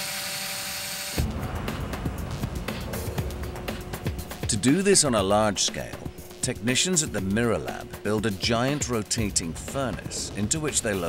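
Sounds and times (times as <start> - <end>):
small electric motor whine: 0.0 - 1.2
background music with beat: 1.2 - 11.0.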